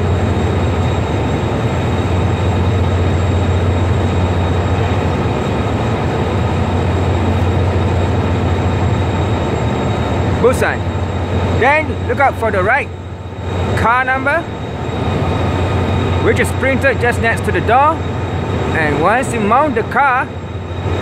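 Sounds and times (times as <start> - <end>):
train rushing by: 0.0 - 21.0.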